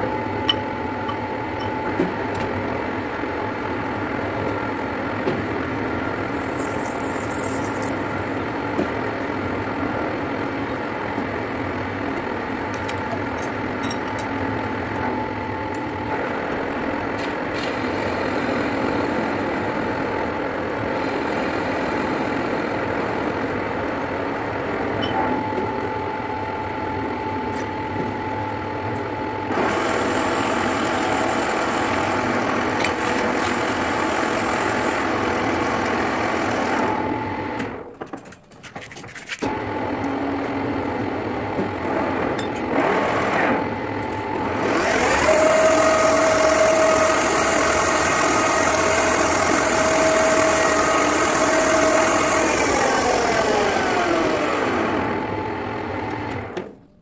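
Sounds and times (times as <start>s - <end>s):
lathe spindle whine: 5.8s - 8.6s, 17.7s - 37.7s, 39.5s - 56.6s
metal lathe humming: 44.5s - 55.2s.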